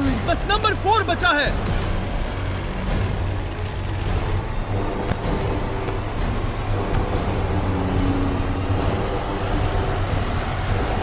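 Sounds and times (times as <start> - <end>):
tense background music: 0.0 - 11.0.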